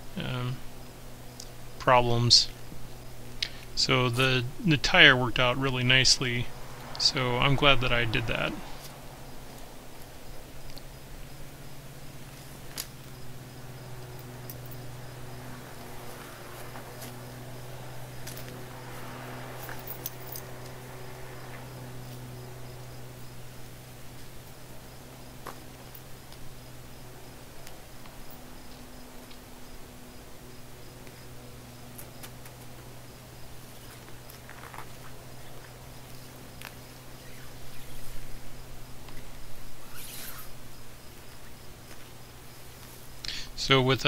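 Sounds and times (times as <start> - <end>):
steady low hum: 0.0 - 44.0
chain clinking and scraping: 14.1 - 15.0, 18.1 - 22.3.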